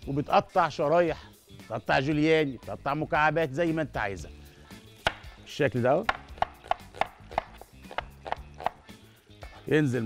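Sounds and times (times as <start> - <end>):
faint background music: 0.0 - 10.0
knife knocking on wooden board: 5.1 - 5.3, 6.1 - 8.8.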